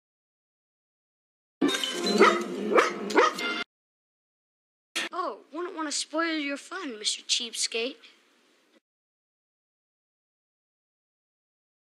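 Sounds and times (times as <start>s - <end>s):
dog barking: 2.2s - 3.6s.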